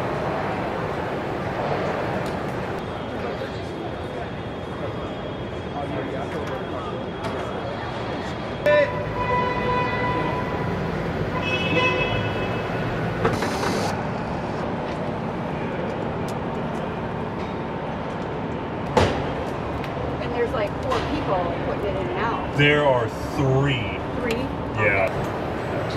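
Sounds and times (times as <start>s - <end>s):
horn-like beeping tones: 8.6s - 13.1s.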